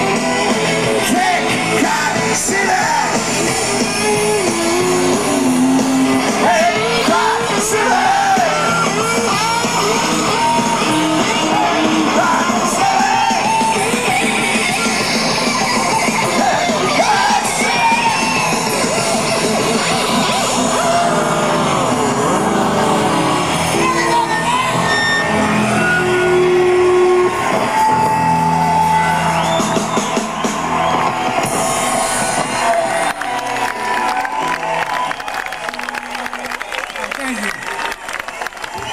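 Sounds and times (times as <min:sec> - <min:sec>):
guitars sliding in pitch: 0:00.0 - 0:33.1
live rock band playing: 0:00.0 - 0:36.6
crowd shouting and whooping: 0:00.0 - 0:38.9.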